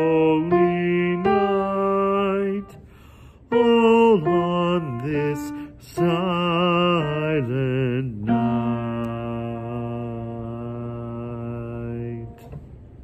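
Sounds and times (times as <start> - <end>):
man singing solo: 0.0 - 2.8, 3.5 - 12.5.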